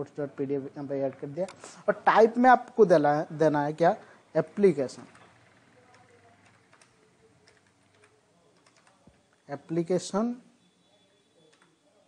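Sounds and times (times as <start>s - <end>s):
faint keyboard typing: 4.2s - 9.8s, 11.2s - 12.0s.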